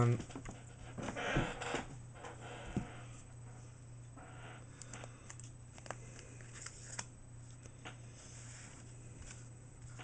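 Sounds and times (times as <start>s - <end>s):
low steady hum: 0.0s - 10.0s
trading cards sliding and rustling: 5.0s - 10.0s.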